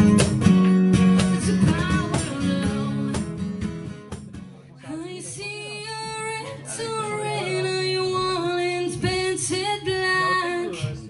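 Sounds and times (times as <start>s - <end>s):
soft acoustic accompaniment: 0.0s - 11.0s.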